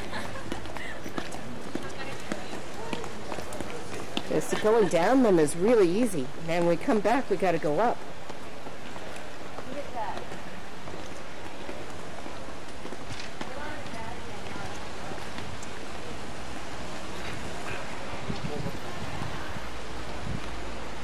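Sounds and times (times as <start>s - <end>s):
faint voices of people: 0.0s - 5.1s, 17.1s - 20.4s
city square background hiss: 0.0s - 21.0s.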